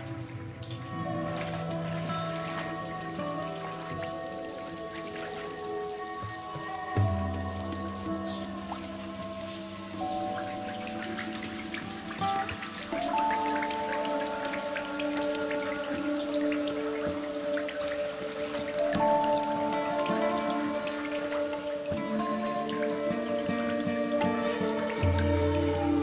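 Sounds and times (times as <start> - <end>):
soft music of held notes: 0.0 - 26.0
water dripping and spattering: 0.0 - 26.0
water running from taps: 0.0 - 26.0.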